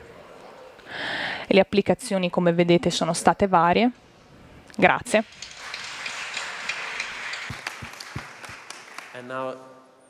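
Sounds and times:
audience applauding: 0:05.3 - 0:09.3.

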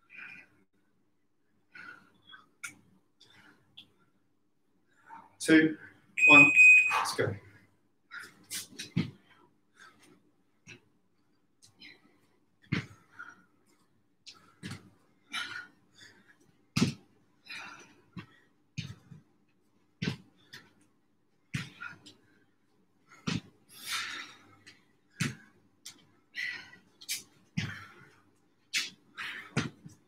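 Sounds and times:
heavy breathing: 0:21.6 - 0:28.4.

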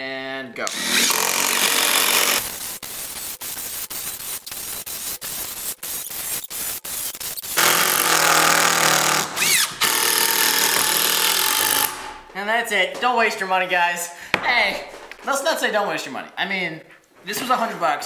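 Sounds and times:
impact driver hammering screws: 0:00.7 - 0:02.5, 0:07.5 - 0:12.2.

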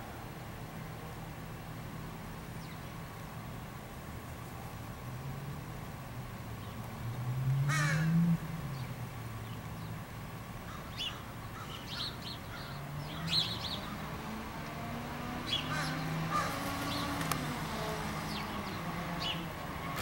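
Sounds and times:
crow cawing: 0:07.7 - 0:08.2, 0:10.7 - 0:13.4, 0:15.7 - 0:16.6.

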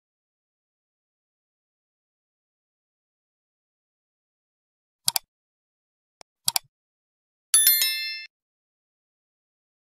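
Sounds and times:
double mouse click: 0:05.1 - 0:05.3, 0:06.5 - 0:06.7
bright bell-like chime: 0:07.6 - 0:08.4.

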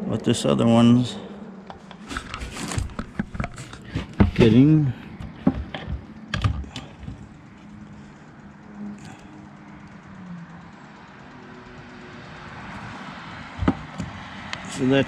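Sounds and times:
test probes clicking and tapping: 0:01.6 - 0:12.8.

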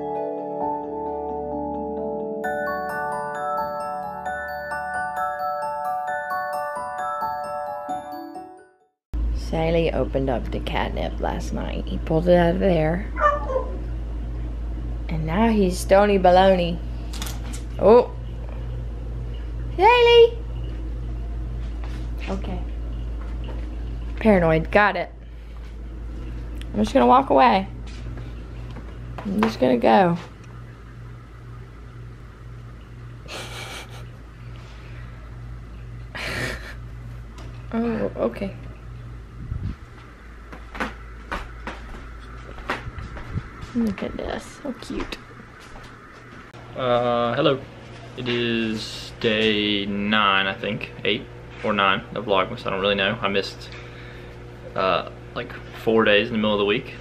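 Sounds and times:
steady low hum: 0:09.2 - 0:57.0
cat meowing: 0:13.2 - 0:13.8.

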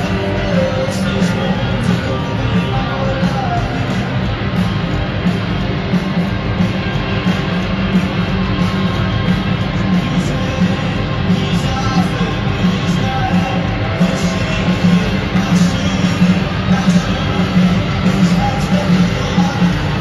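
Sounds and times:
driving drum beat: 0:00.0 - 0:20.0
electric guitars: 0:00.0 - 0:20.0.

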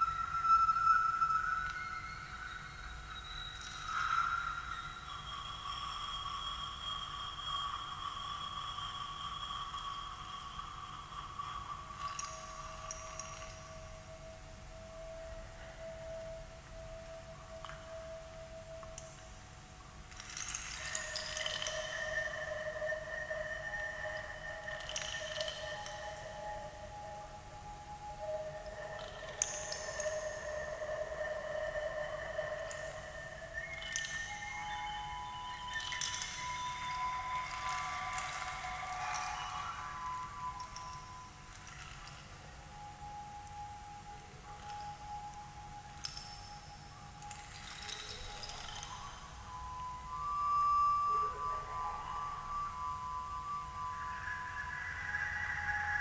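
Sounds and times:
whistle-like blown tones: 0:00.0 - 0:19.4, 0:20.4 - 0:56.0.

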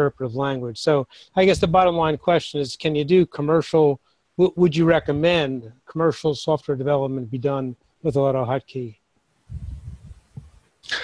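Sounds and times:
air rumbling across microphone: 0:09.5 - 0:10.6.

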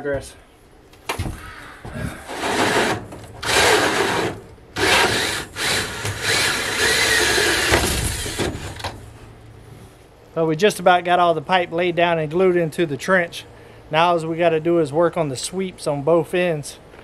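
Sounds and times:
cordless drill boring wood: 0:02.3 - 0:08.8.

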